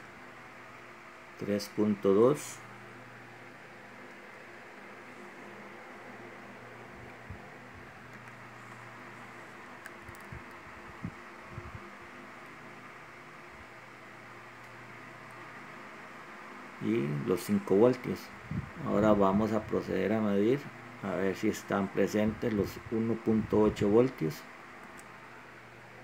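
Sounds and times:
electrical hum and hiss: 0.0 - 26.0.

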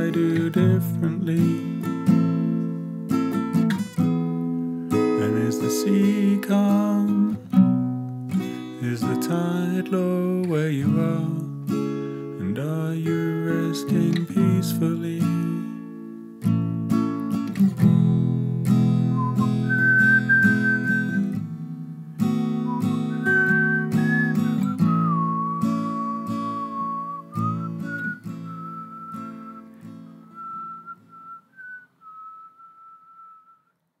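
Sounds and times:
strummed acoustic guitar: 0.0 - 31.8
whistled melody: 19.1 - 21.4, 22.6 - 33.7.

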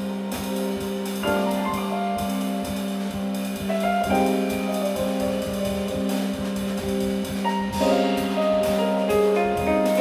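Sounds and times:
drum kit playing: 0.0 - 10.0
keyboard chords: 0.0 - 10.0.

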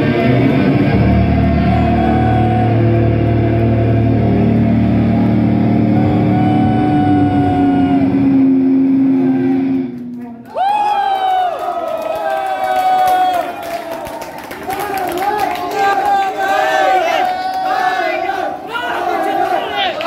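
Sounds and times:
distorted electric guitar chord: 0.0 - 10.0
high held wails: 0.0 - 11.8
low note sliding down: 0.9 - 10.2.

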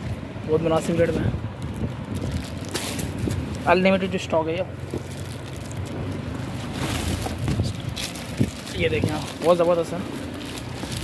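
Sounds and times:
plastic wrapping rustling: 0.8 - 11.0
phone microphone handling rumble: 4.8 - 9.4.

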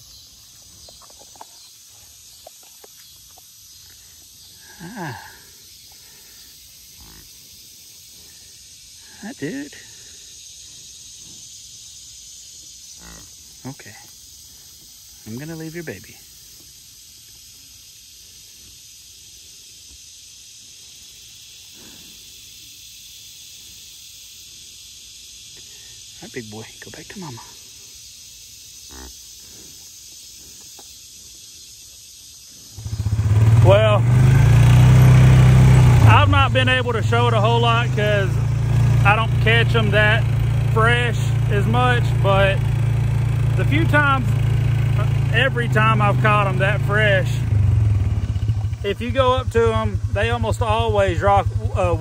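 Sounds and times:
insects chirping: 0.0 - 52.0.

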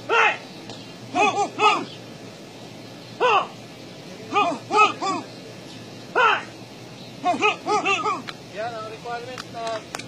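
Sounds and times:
person shouting calls: 0.0 - 0.5, 1.1 - 2.0, 3.2 - 3.6, 4.2 - 5.3, 6.1 - 6.6, 7.2 - 8.3.

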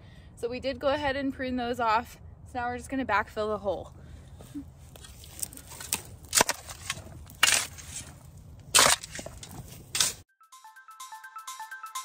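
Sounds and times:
shovel scraping into soil: 4.8 - 10.3.

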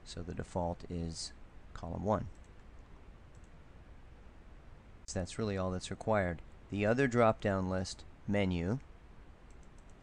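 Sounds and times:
computer mouse clicks: 2.3 - 3.6, 9.4 - 10.0.

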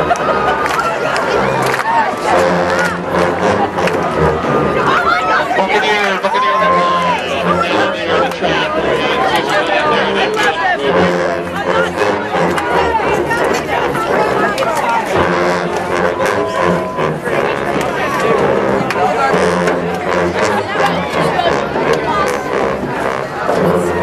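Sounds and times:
crowd chatter: 0.0 - 24.0
tubas playing low held notes: 0.0 - 24.0.

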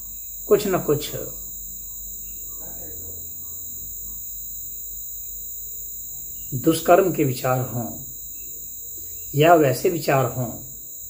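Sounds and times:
high-pitched whine: 0.0 - 11.0
low hum: 0.0 - 11.0
faint murmur of voice: 2.4 - 4.2.

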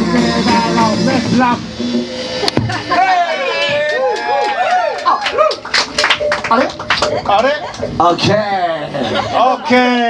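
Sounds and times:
live band playing: 0.0 - 9.5
person whooping: 2.9 - 5.7.

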